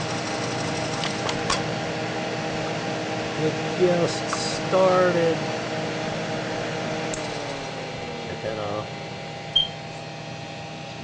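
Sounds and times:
computer cooling fans humming: 0:00.0 - 0:11.0
disc drive running: 0:00.0 - 0:11.0.

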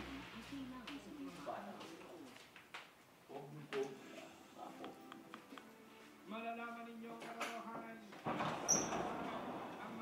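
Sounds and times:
short high squeaks: 0:08.7 - 0:09.0.

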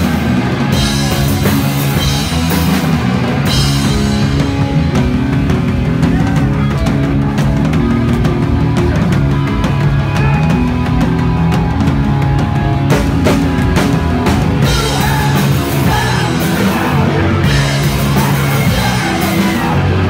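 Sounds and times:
bass chugging: 0:00.0 - 0:20.0
distorted electric guitars: 0:00.0 - 0:20.0
driving drums: 0:00.0 - 0:20.0.

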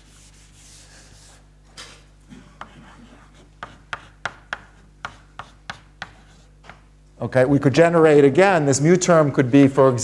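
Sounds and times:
chalk tapping and scratching: 0:00.0 - 0:01.4, 0:02.6 - 0:06.9
faint steady hum: 0:00.0 - 0:10.0.

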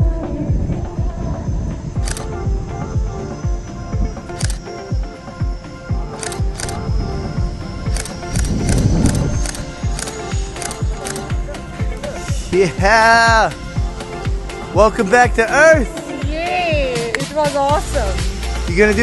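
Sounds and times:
background music with steady beat: 0:00.0 - 0:19.0.

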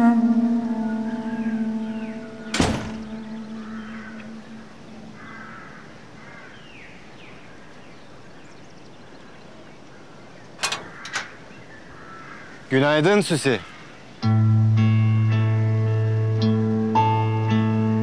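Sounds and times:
music chord: 0:00.0 - 0:05.3, 0:14.2 - 0:18.0
birds calling: 0:00.0 - 0:14.4
door shutting thud: 0:02.5 - 0:03.4, 0:10.6 - 0:11.4.

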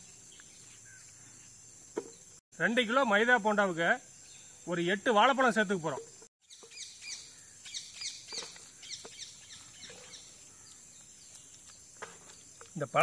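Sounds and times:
small birds chirping: 0:06.1 - 0:13.0.

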